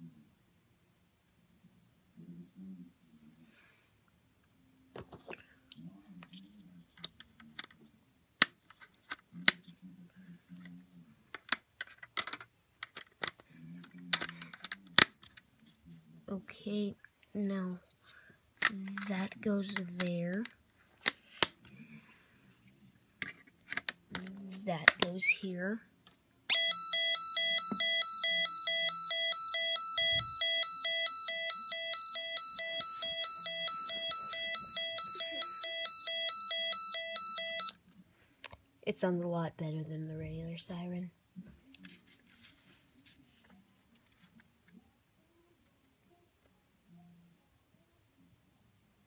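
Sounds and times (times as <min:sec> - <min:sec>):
plastic parts snapping and clicking: 0:11.4 - 0:13.4, 0:14.1 - 0:15.4, 0:20.3 - 0:21.6, 0:23.2 - 0:25.1
electronic two-tone siren: 0:26.5 - 0:37.8.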